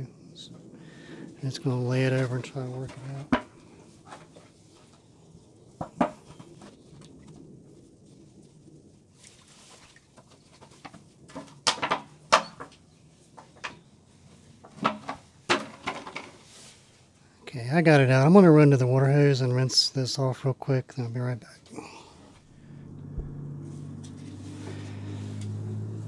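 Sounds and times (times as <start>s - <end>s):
short rustle: 16.3s - 17.1s.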